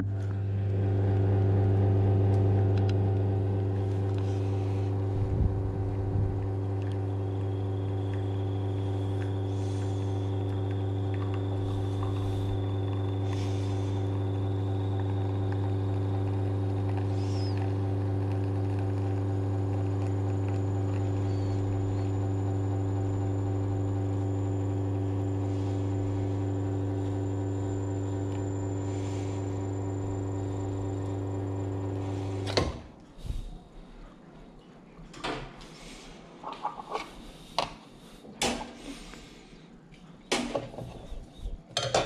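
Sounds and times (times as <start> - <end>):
espresso machine pump humming: 0.0 - 32.7.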